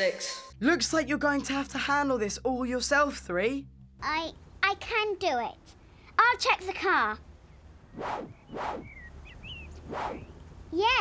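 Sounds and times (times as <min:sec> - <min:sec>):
faint bird chirps: 0:07.4 - 0:10.5.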